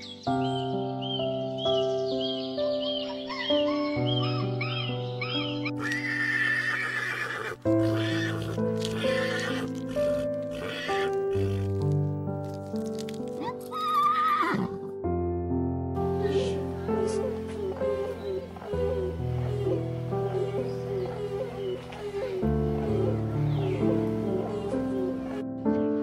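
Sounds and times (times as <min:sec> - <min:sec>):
background music: 0:00.0 - 0:26.0
harsh animal call: 0:03.3 - 0:11.8
horse whinnying: 0:05.3 - 0:11.9, 0:13.4 - 0:14.9.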